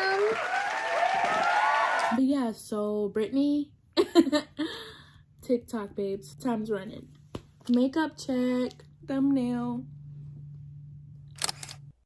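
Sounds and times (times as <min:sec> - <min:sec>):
steady low hum: 0:02.5 - 0:12.0
camera shutter click: 0:11.4 - 0:11.8.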